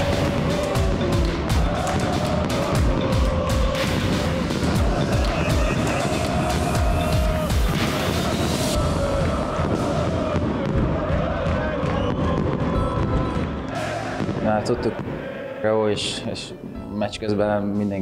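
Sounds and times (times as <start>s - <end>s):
fireworks bangs and crackles: 0.0s - 15.2s
music: 0.0s - 18.0s.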